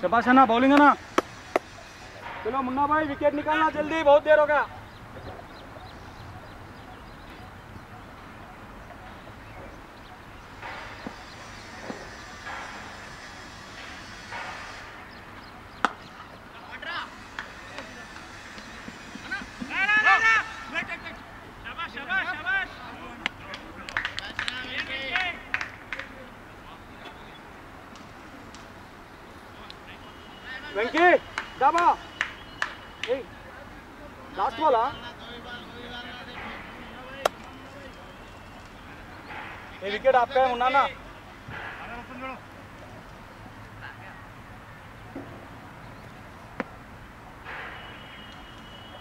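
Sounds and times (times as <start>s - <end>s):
cricket bat striking ball: 15.8s - 16.1s, 37.2s - 37.4s
players shouting: 15.8s - 23.4s.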